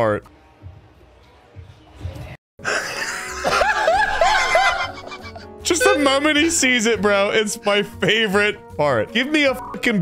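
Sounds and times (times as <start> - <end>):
quiet background music: 0.0 - 10.0
men laughing hard: 2.6 - 6.7.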